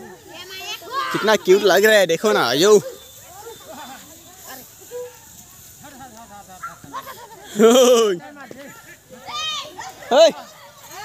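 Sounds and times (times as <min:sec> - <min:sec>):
distant people shouting: 0:00.6 - 0:05.8.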